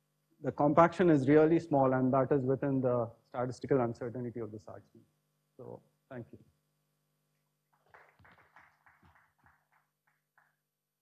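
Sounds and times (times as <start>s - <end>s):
faint audience applause: 7.7s - 10.7s.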